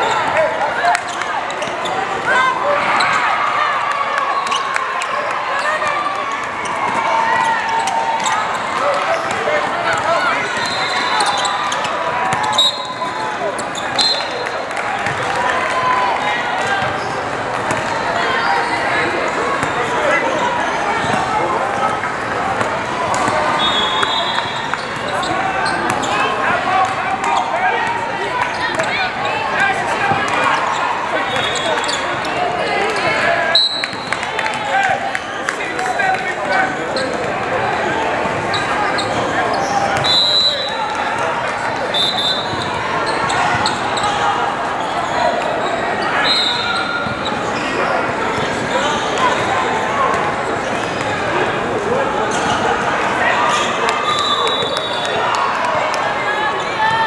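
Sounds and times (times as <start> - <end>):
sneakers squeaking: 0.0 - 3.2, 5.5 - 15.3, 23.1 - 34.2, 35.2 - 37.3, 38.1 - 41.0, 41.9 - 51.3, 52.2 - 52.8
babble of voices: 0.0 - 57.0.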